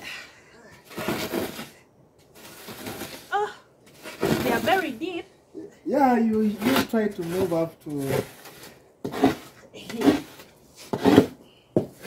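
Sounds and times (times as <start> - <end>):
stone scraping sandy soil: 0.8 - 3.3, 3.9 - 5.2, 6.3 - 12.0.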